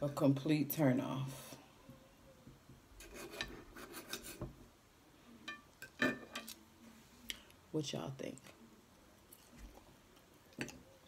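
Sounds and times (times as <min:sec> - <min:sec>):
knife and fork scraping plate: 0:03.0 - 0:04.4.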